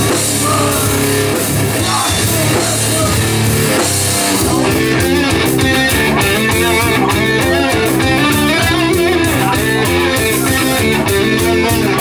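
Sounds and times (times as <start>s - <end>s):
bass guitar: 0.0s - 12.0s
distorted electric guitar riffing: 0.0s - 12.0s
drum kit: 0.0s - 12.0s.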